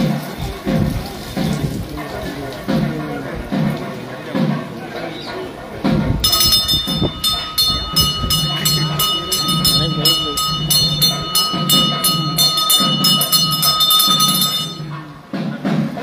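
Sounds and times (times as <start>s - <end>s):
voices: 0.0s - 16.0s
low pulsing beat: 6.0s - 15.0s
temple bell rung rapidly: 6.2s - 15.2s.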